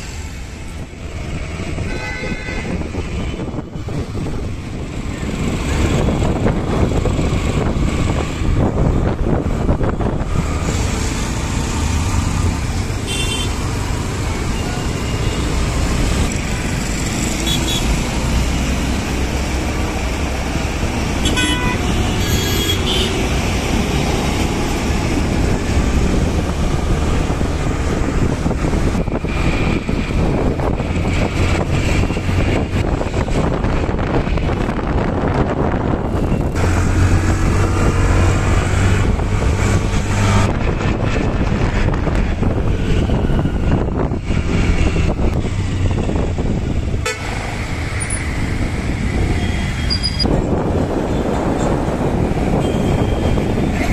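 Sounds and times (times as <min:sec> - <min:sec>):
tyre and road noise: 0:00.0 - 0:53.9
vehicle engine rumble: 0:02.6 - 0:53.9.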